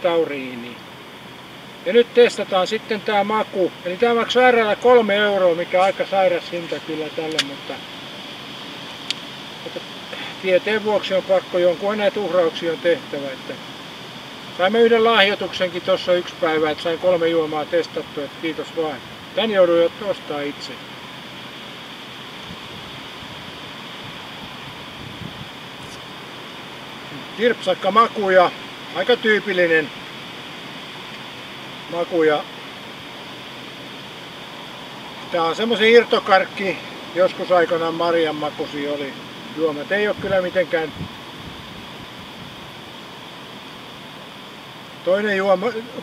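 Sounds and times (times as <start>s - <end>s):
outdoor background hiss: 0.0s - 46.0s.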